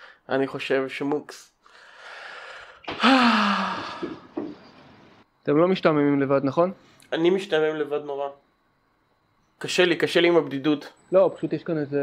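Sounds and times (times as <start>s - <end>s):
person sighing: 2.6s - 4.4s.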